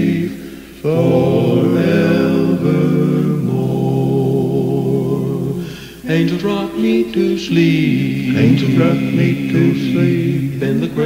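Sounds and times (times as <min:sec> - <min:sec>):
a cappella quartet singing harmony: 0:00.0 - 0:11.0.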